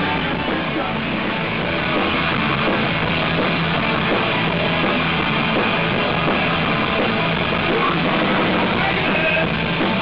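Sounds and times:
punk rock band playing: 0.0 - 10.0.

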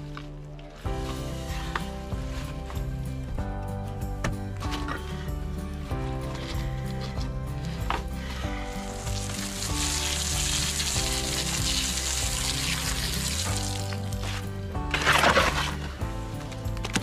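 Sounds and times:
background music: 0.0 - 17.0
hose nozzle spraying water: 6.4 - 16.7.

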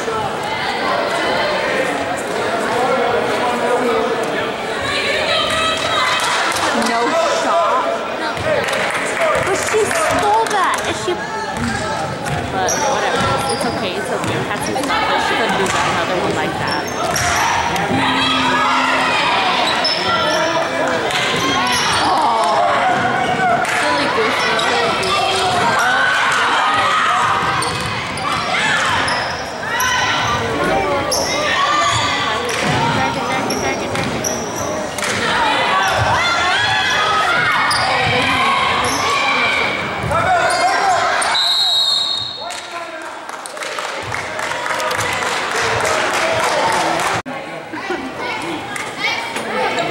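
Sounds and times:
people shouting and talking: 0.0 - 49.9
referee's whistle: 41.2 - 42.5.

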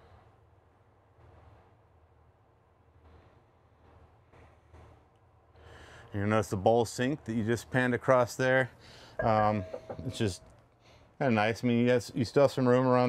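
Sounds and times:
soft faint bumps: 9.2 - 10.4
faint low hum: 9.2 - 10.6.

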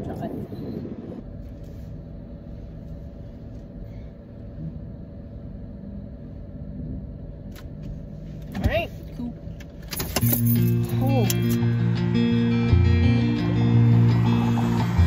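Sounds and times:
car road noise rumble: 0.0 - 15.0.

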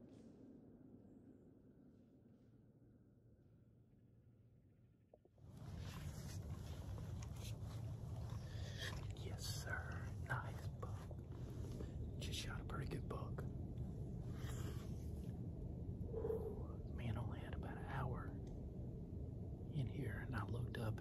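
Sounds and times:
low rumble: 0.0 - 21.0
man whispering: 5.9 - 13.8, 16.4 - 18.4, 19.7 - 21.0.

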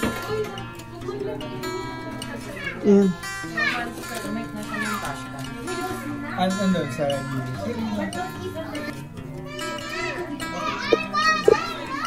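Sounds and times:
background music: 0.0 - 12.0
children chattering and calling out: 0.0 - 12.0.

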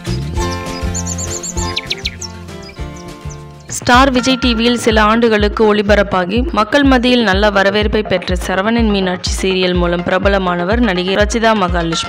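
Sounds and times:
bird chirps: 0.0 - 3.8
calm intro music: 0.0 - 5.3.

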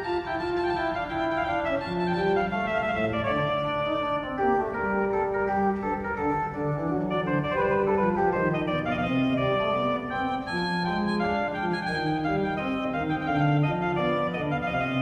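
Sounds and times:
pipe organ playing counterpoint: 0.0 - 15.0.

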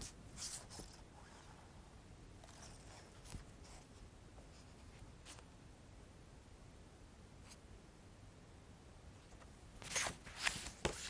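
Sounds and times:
faint rustling of photo prints: 0.0 - 1.8, 2.4 - 5.5, 9.2 - 11.0.

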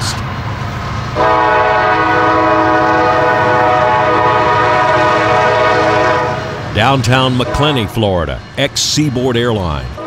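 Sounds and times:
locomotive air horn chord: 1.2 - 6.6.

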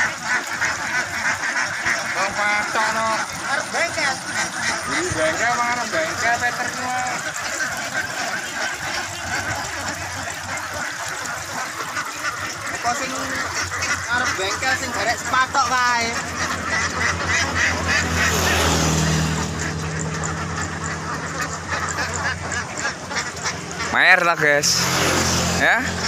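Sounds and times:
ducks quacking: 0.0 - 26.0.

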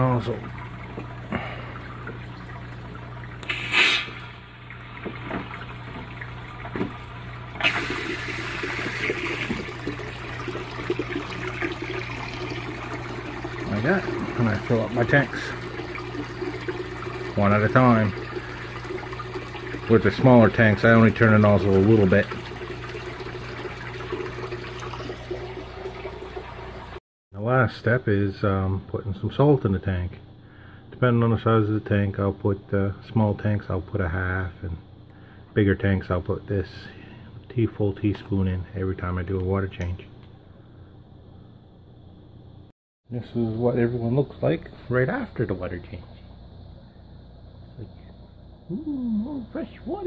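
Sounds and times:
water gushing into fish tank: 0.0 - 27.0
low steady hum: 0.0 - 50.0.

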